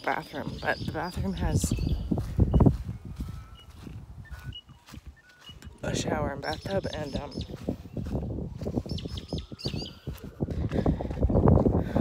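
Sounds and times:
faint bird chirps and whistles: 1.7 - 5.7, 8.9 - 10.1.

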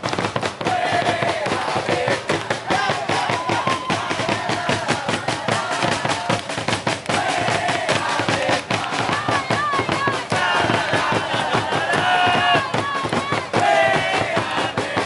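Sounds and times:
bass drums beating: 0.0 - 15.0
crowd singing and chanting: 0.0 - 15.0.

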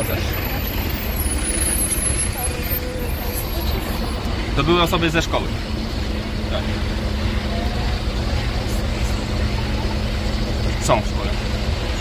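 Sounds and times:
faint indistinct voices: 0.0 - 12.0
low street rumble: 0.0 - 12.0.

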